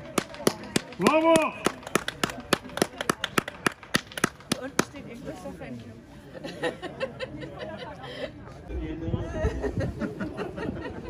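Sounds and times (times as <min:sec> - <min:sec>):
people clapping: 0:00.0 - 0:05.0.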